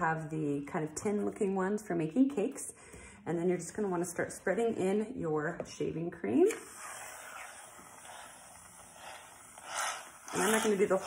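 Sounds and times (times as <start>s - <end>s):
aerosol can spraying foam: 6.6s - 11.0s.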